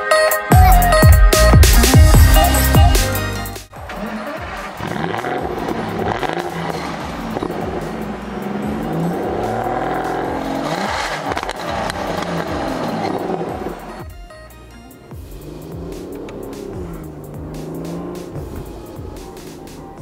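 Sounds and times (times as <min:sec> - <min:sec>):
car engine revving: 0:03.7 - 0:20.0.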